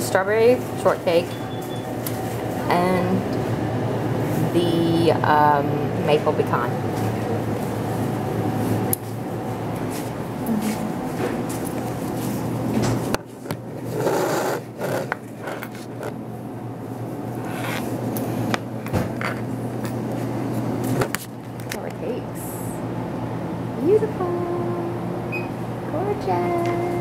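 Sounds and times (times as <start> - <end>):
low room hum: 0.0 - 27.0.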